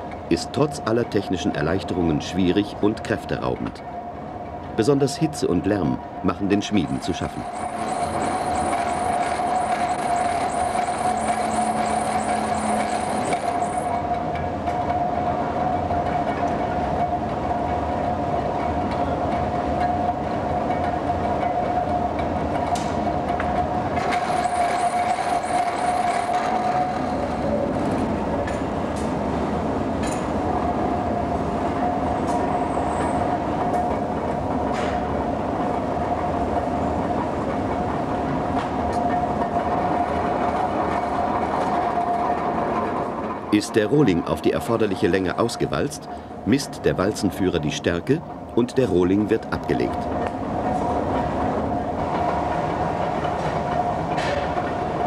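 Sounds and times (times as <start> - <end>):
rolling mill mechanical drone: 0.0 - 55.0.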